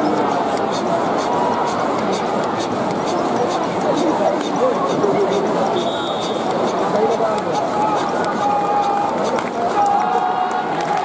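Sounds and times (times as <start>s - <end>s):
stadium crowd cheering: 0.0s - 11.0s.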